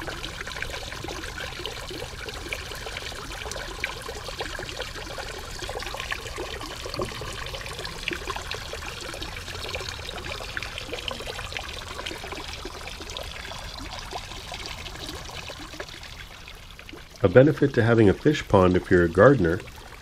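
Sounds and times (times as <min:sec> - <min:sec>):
water trickling over rocks: 0:00.0 - 0:20.0.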